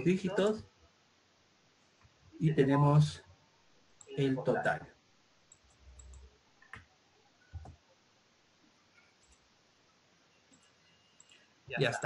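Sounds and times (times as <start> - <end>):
mouse clicks: 5.5 - 6.9.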